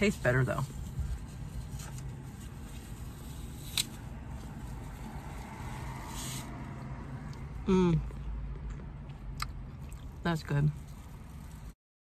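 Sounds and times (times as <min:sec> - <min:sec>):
car cabin hum: 0:00.0 - 0:03.2.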